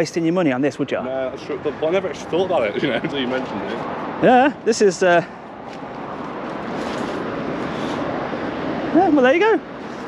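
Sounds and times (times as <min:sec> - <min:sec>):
steady rushing outdoor noise: 0:00.0 - 0:10.0.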